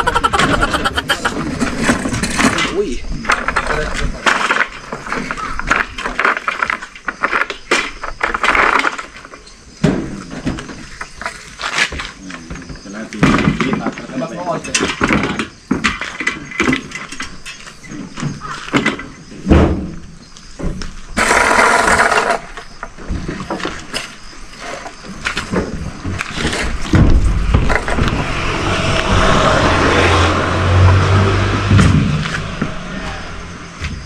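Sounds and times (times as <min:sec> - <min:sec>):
rasping scrape: 0:21.2 - 0:22.6, 0:26.2 - 0:31.2.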